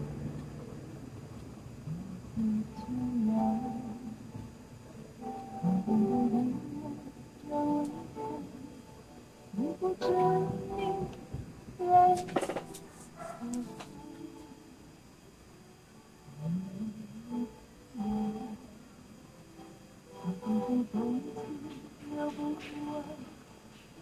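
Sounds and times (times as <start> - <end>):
music from small radio speaker: 1.9 - 24.0.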